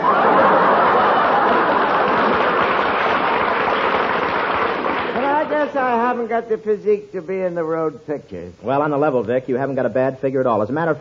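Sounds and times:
audience laughing and applauding: 0.0s - 5.6s.

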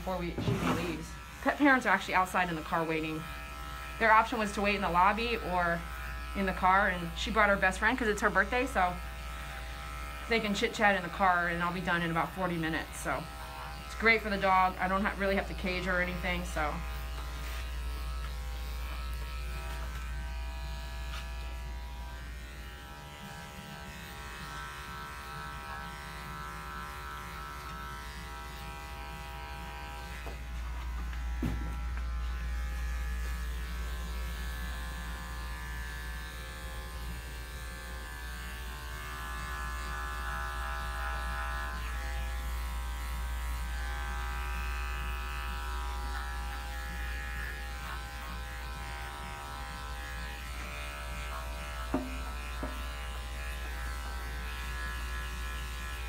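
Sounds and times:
electric clipper buzzing: 0.0s - 56.0s.

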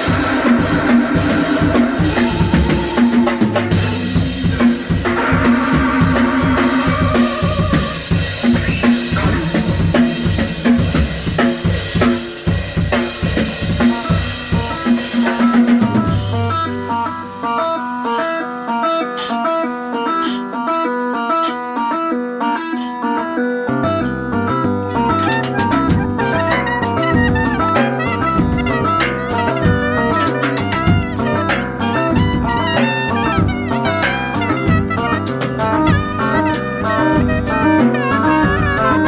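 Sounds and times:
repeating melodic figure: 0.0s - 7.4s
low bass line: 0.0s - 8.0s
drum kit: 0.0s - 23.2s, 24.9s - 39.0s.

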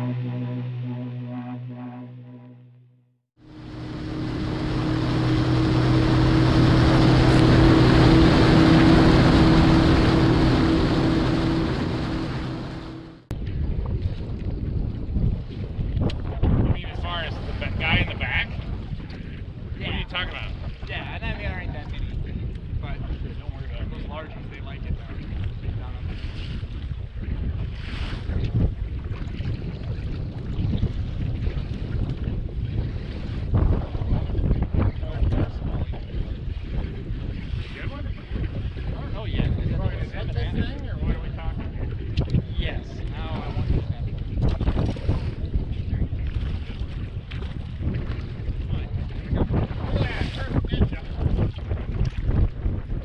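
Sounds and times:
low drone: 0.0s - 13.3s
rushing whoosh: 3.4s - 13.3s
wind buffeting microphone: 3.5s - 53.0s
water lapping against a boat hull: 17.4s - 53.0s.

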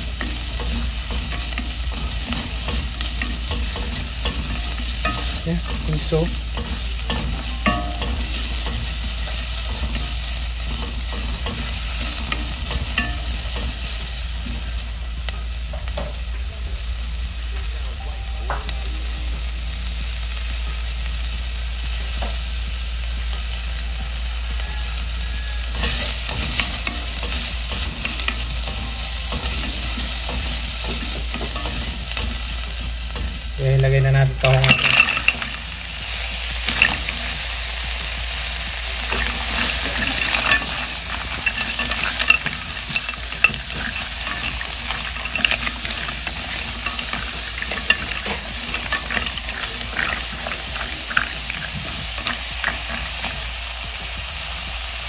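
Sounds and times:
sizzling in a pot: 0.0s - 55.0s.

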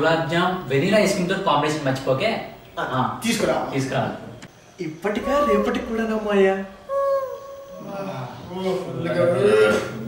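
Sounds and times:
man speaking indistinctly: 4.8s - 6.9s
high whine falling in pitch: 5.1s - 8.1s.

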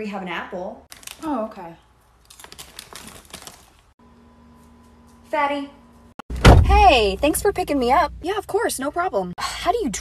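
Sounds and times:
foil snack bag crinkling: 2.2s - 3.9s.

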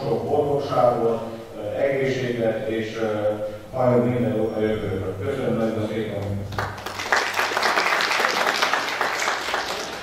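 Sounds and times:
audience applauding: 6.6s - 10.0s.

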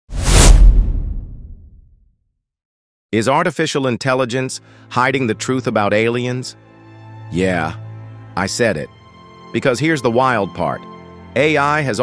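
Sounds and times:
whoosh with deep rumble: 0.1s - 1.9s.

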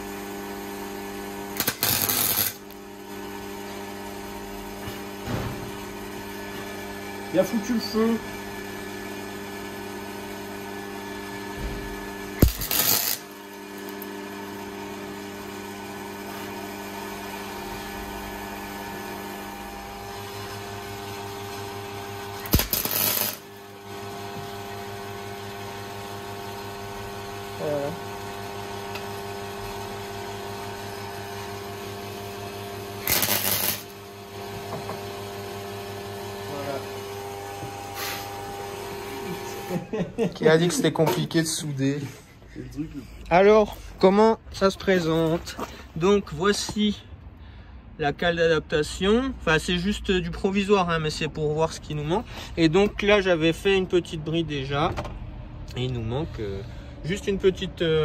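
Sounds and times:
welder arc crackle: 0.0s - 5.0s, 12.1s - 14.7s, 19.5s - 25.1s, 32.0s - 34.4s
steady hum: 22.0s - 24.0s.

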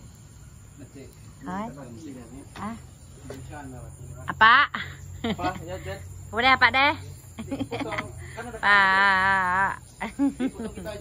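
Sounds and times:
high insect drone: 0.0s - 11.0s.

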